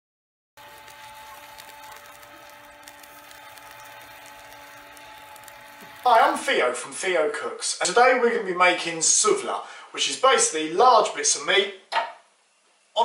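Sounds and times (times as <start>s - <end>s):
spit motor humming: 0.6s - 6.5s
meat sizzling over charcoal: 0.6s - 6.8s.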